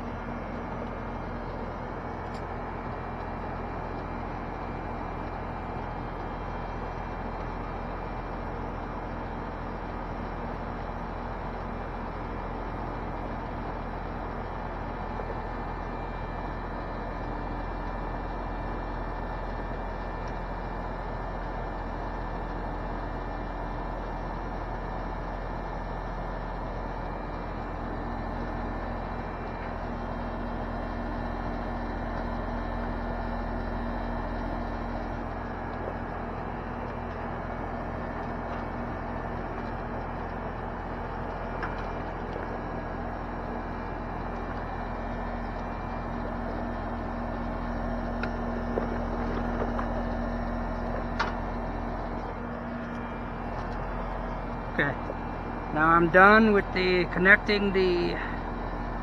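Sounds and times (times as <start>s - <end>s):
compressor hum: 0.0s - 59.0s
air conditioner fan rush: 55.7s - 58.4s.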